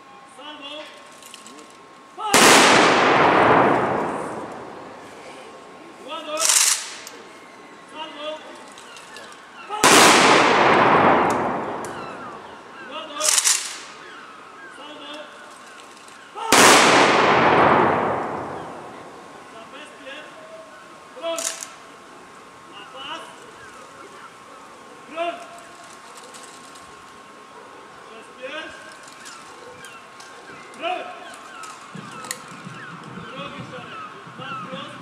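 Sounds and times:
rifle volley crack with echo: 2.4 - 5.7, 9.8 - 14.1, 16.4 - 19.6.

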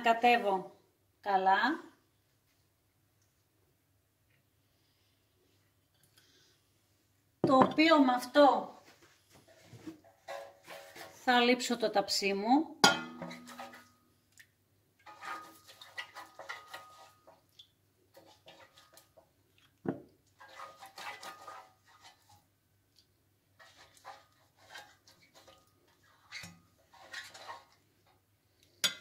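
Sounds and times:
dull knocks of metal pan: 12.8 - 13.5.

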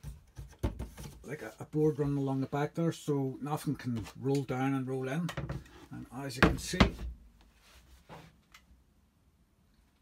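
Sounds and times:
soft brushing: 7.4 - 8.4.

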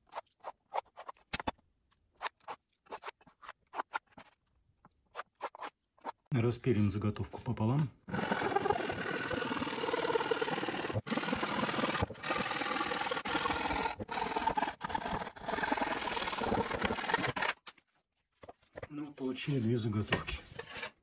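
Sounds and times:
hand saw cutting plywood: 8.1 - 17.6.

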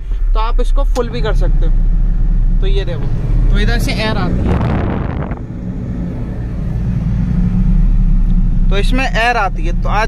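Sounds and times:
car engine low hum: 0.0 - 10.0
ventilation blower: 4.2 - 7.4.

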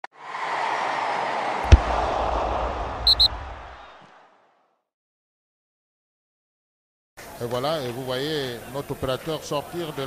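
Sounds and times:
whoosh: 1.6 - 4.1
high blips: 3.0 - 3.9.

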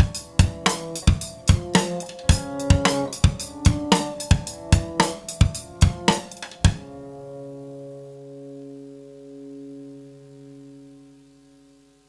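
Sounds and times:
rock band held note: 0.0 - 6.8.

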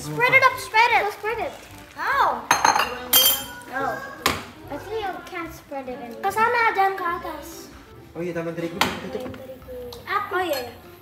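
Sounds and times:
kitchenware clinking: 2.4 - 4.6, 10.4 - 10.9
children's voices: 3.0 - 7.7.

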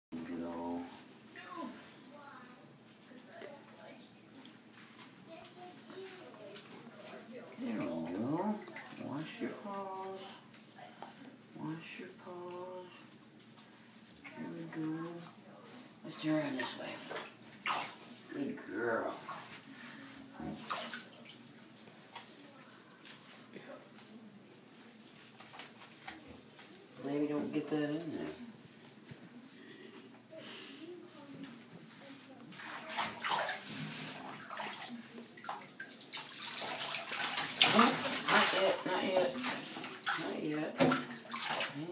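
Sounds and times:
water sloshing in a bathtub: 0.2 - 41.9
wet scrubbing of fur: 16.1 - 22.4, 31.1 - 41.9
water sloshing: 16.2 - 22.6, 32.5 - 41.9.

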